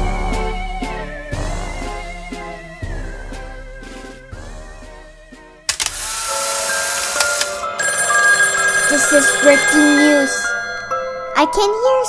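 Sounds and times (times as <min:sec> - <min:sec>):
held musical tones: 0:05.7 - 0:11.2
bright chime-like tones: 0:06.6 - 0:11.4.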